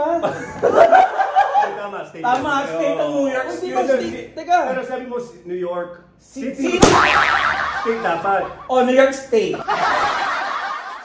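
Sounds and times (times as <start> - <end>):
sharp plastic whack: 6.8 - 7.2
wobbling comedy boing: 6.8 - 8.7.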